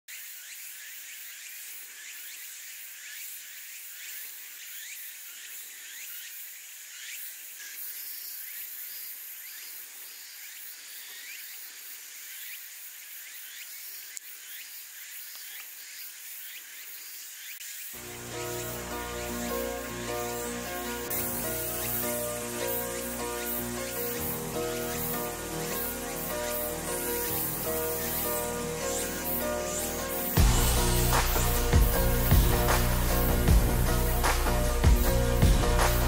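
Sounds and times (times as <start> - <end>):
insect chorus buzzing: 0.1 - 36.0.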